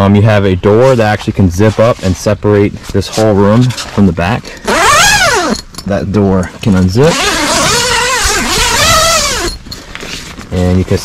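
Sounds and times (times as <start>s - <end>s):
tent zipper being unzipped: 1.6s - 2.2s, 3.1s - 5.6s, 7.0s - 11.0s.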